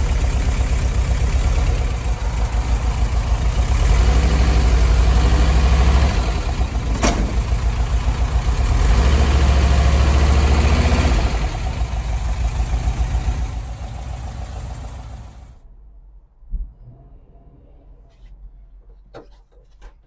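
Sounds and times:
engine idling: 0.0 - 15.6.

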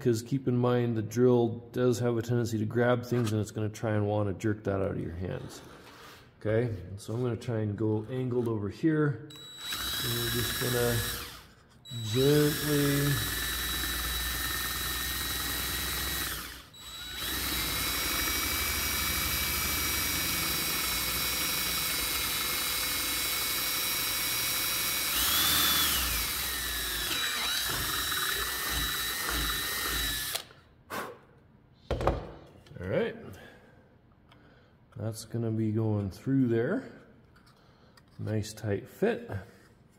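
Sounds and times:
cordless drill boring wood: 9.3 - 30.5.

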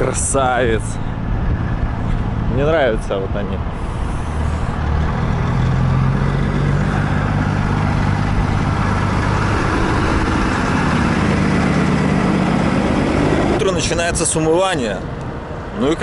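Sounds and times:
truck engine running: 0.0 - 16.0.

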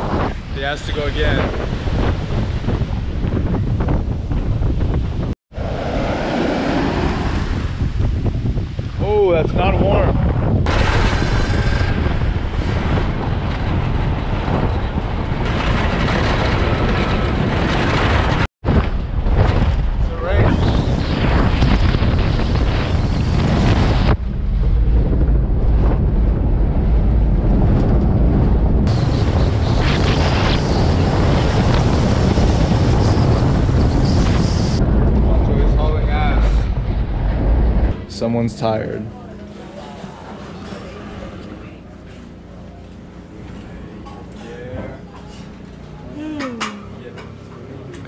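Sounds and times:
wind buffeting microphone: 0.0 - 44.0
sea surf: 5.5 - 10.1.

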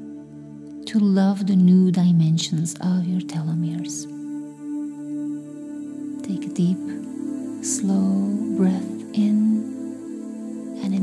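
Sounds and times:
ambient meditation music: 0.0 - 11.0
woman speaking softly: 6.2 - 7.0, 7.6 - 9.6, 10.8 - 11.0.

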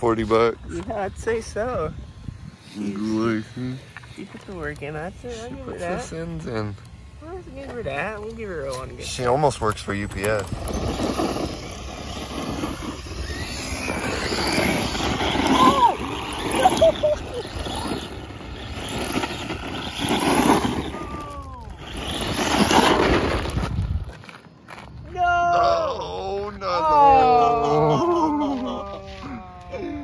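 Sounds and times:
electric motor whining: 0.0 - 24.2
tyres spinning on gravel: 7.6 - 25.5.

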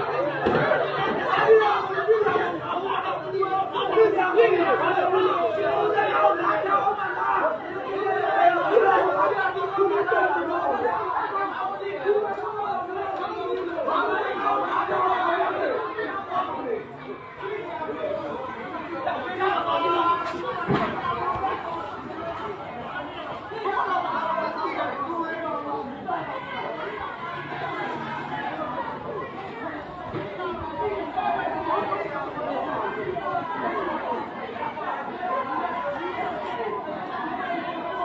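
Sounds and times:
crowd chatter: 0.0 - 38.0.

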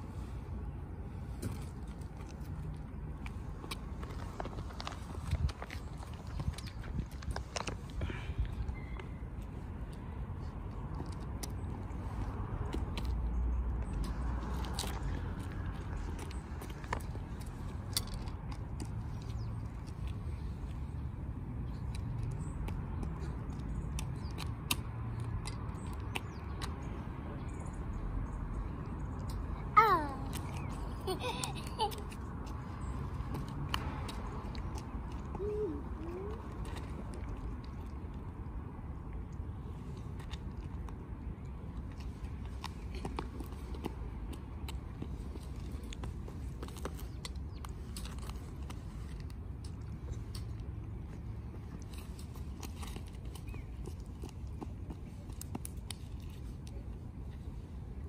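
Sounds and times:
shoes and hands scuffing asphalt: 0.0 - 8.7.

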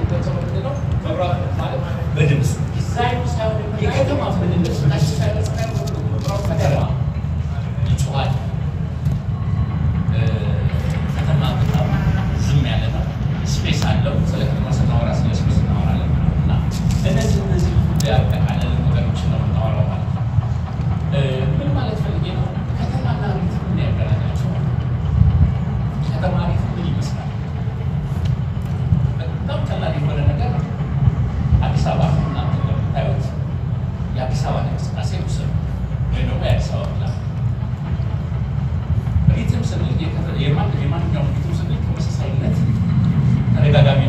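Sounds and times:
man speaking to audience: 0.0 - 8.8, 10.0 - 20.3, 21.1 - 24.8, 25.9 - 27.6, 29.1 - 33.5, 34.1 - 37.4, 39.2 - 44.0
steady low rumble: 0.0 - 44.0.

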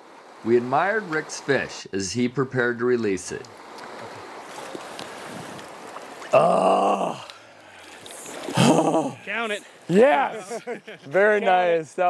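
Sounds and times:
faint water ticks: 3.0 - 8.6
river rushing over gravel: 3.5 - 10.2.

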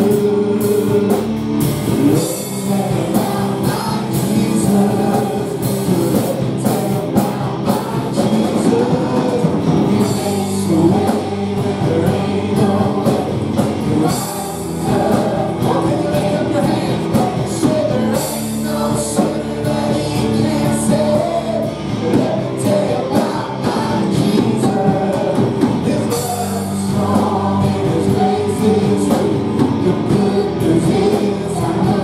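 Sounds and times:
church band playing: 0.0 - 32.0
guitars: 0.0 - 32.0
keyboard: 0.0 - 32.0
person singing: 0.0 - 32.0
steady drum beat: 0.0 - 32.0.

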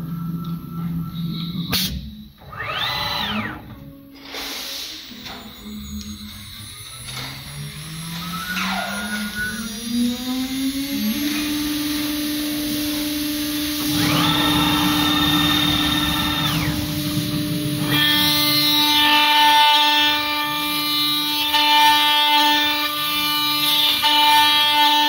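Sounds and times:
drive motors multi-tone whine: 0.0 - 4.4, 5.0 - 25.0
router spindle whine: 2.3 - 3.9, 5.5 - 25.0.

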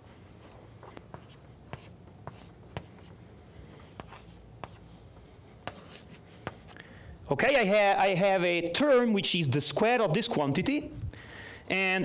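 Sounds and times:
chalk scratching: 0.4 - 3.2, 3.8 - 6.8
chalk tapping on blackboard: 4.0 - 6.7.

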